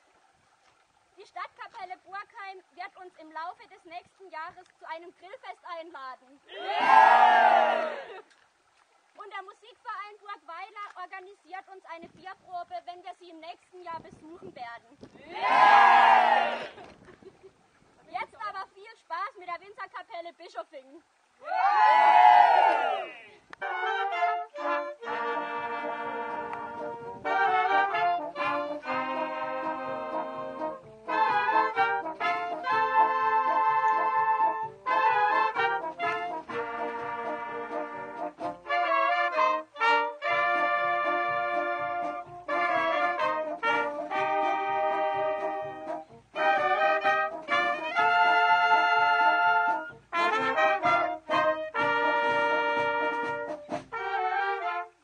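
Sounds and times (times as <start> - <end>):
people cheering and whooping: 6.5 - 8.2, 15.2 - 16.9, 21.4 - 23.4
wind band playing chords: 15.3 - 16.8, 21.7 - 55.0
faint drum beat: 23.6 - 55.0.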